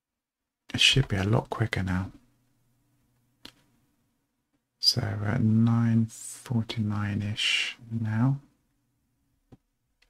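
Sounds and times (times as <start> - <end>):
person speaking: 0.7 - 2.3, 4.8 - 8.5.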